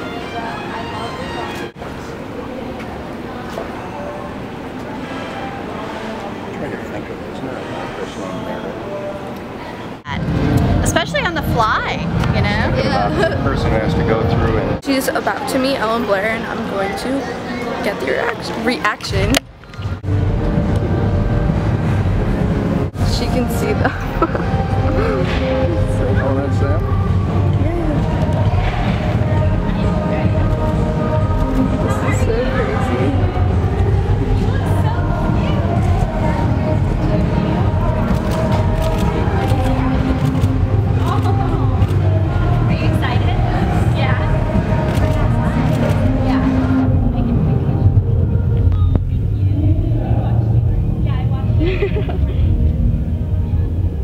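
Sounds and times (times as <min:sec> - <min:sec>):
steady low rumble: 0:19.1 - 0:54.0.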